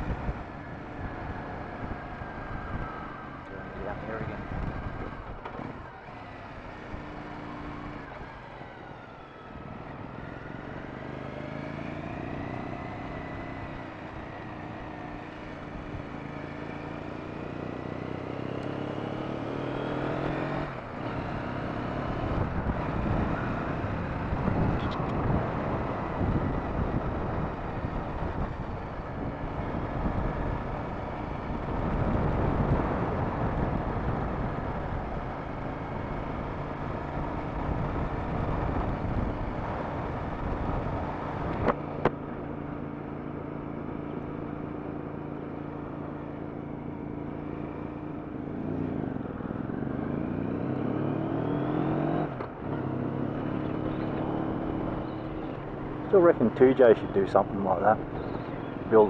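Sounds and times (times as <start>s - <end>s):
motorcycle engine running: 14.6s - 56.7s
wind noise on microphone: 22.2s - 41.8s.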